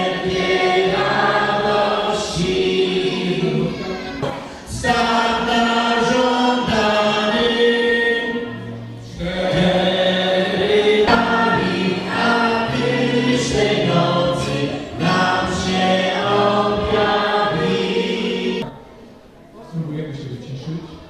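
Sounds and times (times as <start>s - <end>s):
choir singing a carol: 0.0s - 18.8s.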